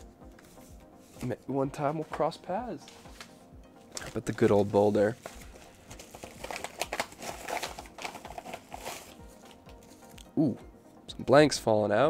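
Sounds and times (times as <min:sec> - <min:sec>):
paper rustling and crinkling: 0:03.9 - 0:10.2.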